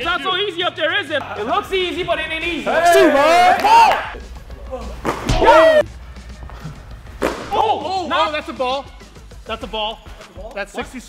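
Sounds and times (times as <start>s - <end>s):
man shouting: 2.6s - 4.1s, 5.3s - 5.8s.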